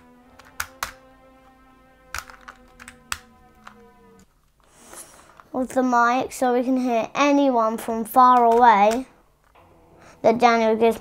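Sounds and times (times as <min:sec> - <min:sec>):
steady low tone: 0:00.0 - 0:04.5, 0:09.5 - 0:11.0
plastic toy clicks and taps: 0:00.4 - 0:01.0, 0:02.2 - 0:03.2, 0:08.3 - 0:09.1.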